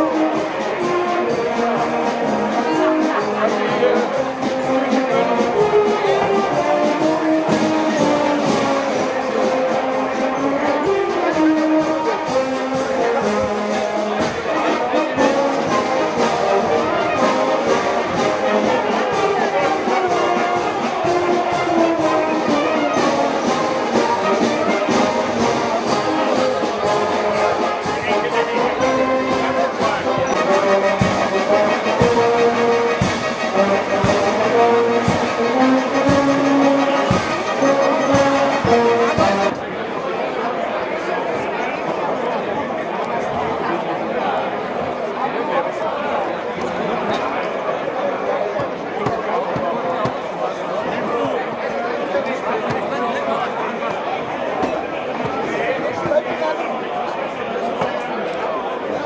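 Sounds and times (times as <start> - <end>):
brass band music: 0.0 - 39.6.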